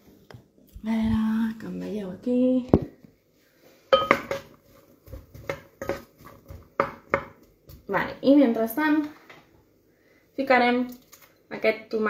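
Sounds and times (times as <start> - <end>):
spoon clinking against cooking pot: 3.9 - 4.5.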